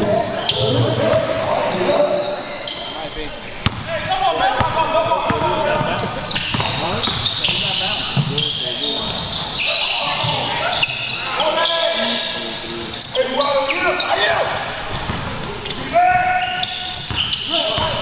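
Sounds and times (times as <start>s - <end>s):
players calling out: 0.0s - 18.0s
sneakers squeaking: 0.0s - 18.0s
basketball bouncing: 3.6s - 3.9s, 6.4s - 7.6s.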